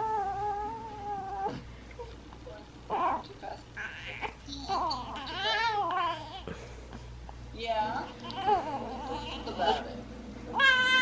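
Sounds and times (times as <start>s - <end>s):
baby fussing cry: 3.8s - 6.5s, 8.2s - 9.8s, 10.6s - 11.0s.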